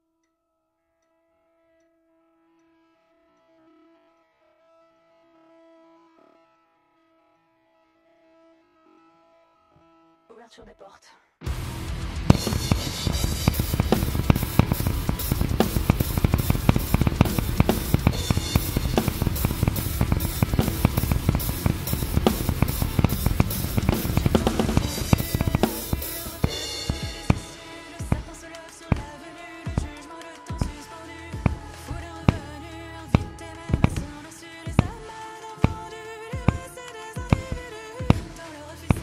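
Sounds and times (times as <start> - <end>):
nu metal song recording: 11.4 - 39.0
acoustic drum kit played hard: 11.5 - 39.0.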